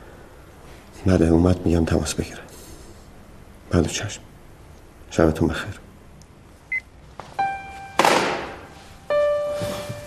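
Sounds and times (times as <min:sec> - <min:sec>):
sustained piano notes: 0:07.4 - 0:10.0.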